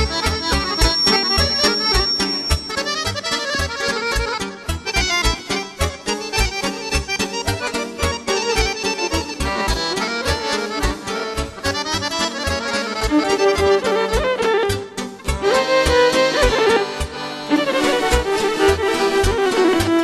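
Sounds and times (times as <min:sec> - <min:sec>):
fast accordion melody: 0:00.0 - 0:20.0.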